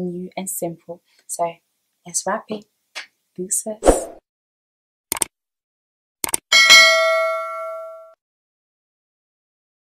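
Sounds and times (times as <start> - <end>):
bright bell ding: 6.6 - 8.2.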